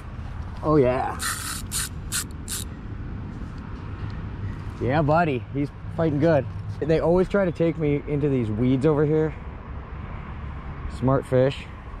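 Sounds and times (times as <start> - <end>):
fishing reel drag ratchet buzzing: 1.2 - 2.7.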